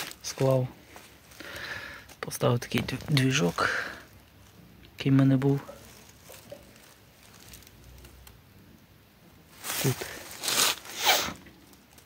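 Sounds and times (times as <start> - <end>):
footsteps crunching in dry litter: 0.0 - 4.7, 5.4 - 8.0, 9.5 - 12.0
low steady background: 0.0 - 12.0.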